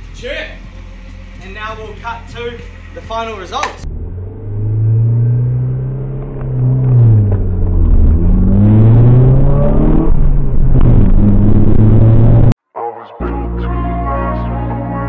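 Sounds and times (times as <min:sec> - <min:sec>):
car engine accelerating: 0:03.8 - 0:12.6.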